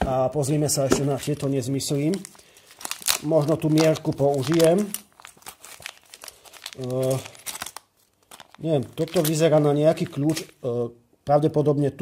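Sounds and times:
wrapping crinkling in hands: 1.2 - 10.7.

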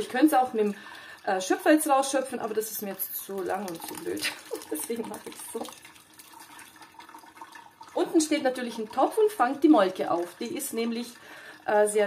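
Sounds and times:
liquid splashing and trickling: 0.0 - 12.0.

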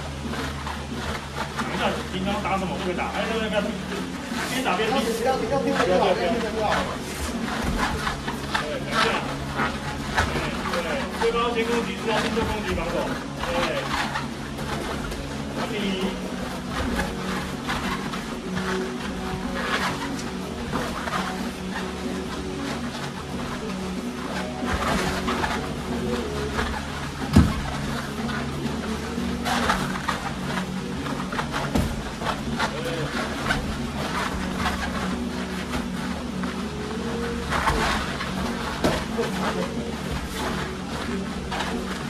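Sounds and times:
background music: 0.0 - 42.0
shuffling footwork: 0.0 - 42.0
voices: 0.4 - 42.0.

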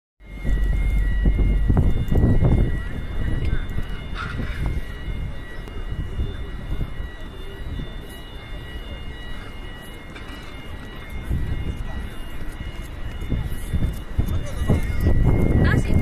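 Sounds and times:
heavy low rumble: 0.2 - 6.9
faint high-pitched tones: 0.2 - 16.0
outdoor crowd: 0.2 - 16.0.

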